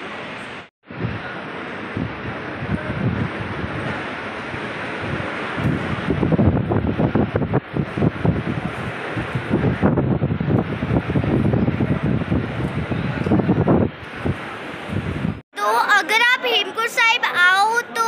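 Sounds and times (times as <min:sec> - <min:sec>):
rumbling buffeting on microphone: 0:00.8 - 0:15.4.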